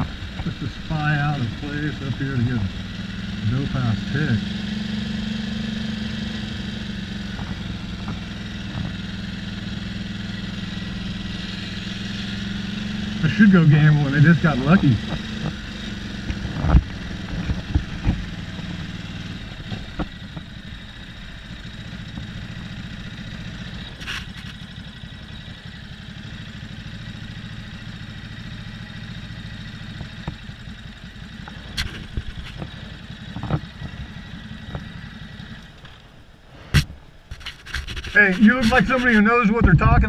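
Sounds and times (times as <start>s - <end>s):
motorcycle engine rumbling: 0.0s - 40.0s.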